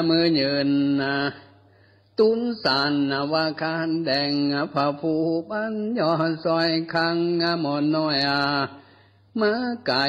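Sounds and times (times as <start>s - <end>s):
monk chanting: 0.0s - 1.5s, 2.2s - 8.8s, 9.4s - 10.0s.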